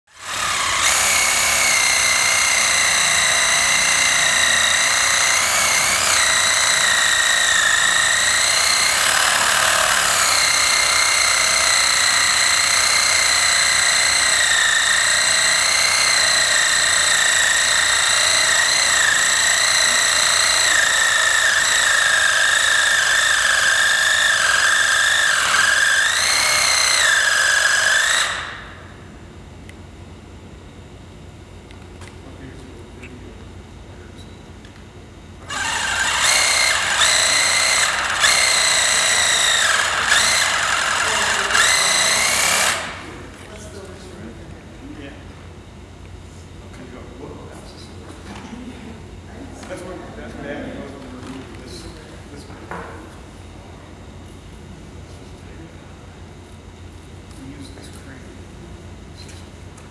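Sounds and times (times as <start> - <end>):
reciprocating saw cutting: 0.1 - 28.9, 35.4 - 43.2.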